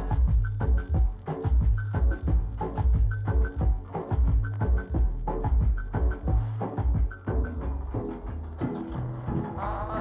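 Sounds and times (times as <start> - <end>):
instrumental song with bass line: 0.0 - 10.0.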